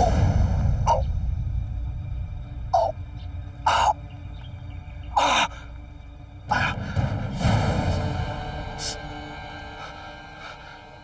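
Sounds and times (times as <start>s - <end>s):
low rumbling background: 0.0s - 11.0s.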